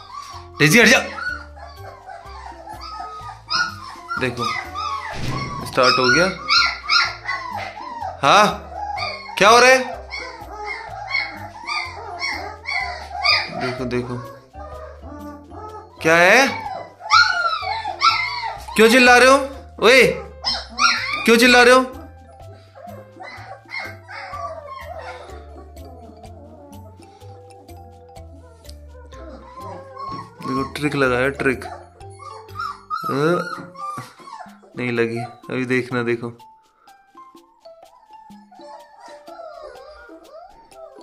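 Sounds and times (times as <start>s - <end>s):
background music with low beat: 0.0s - 41.0s
puppies yipping and whining: 0.0s - 41.0s.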